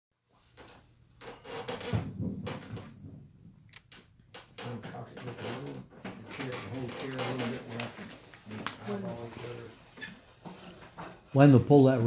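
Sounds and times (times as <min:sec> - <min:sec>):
objects knocking and clunking: 0:00.5 - 0:08.9, 0:09.9 - 0:11.3
low voices talking: 0:04.6 - 0:09.8.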